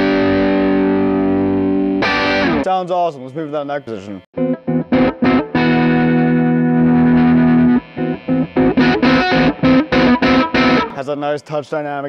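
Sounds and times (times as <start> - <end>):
distorted electric guitar: 0.0 - 11.2.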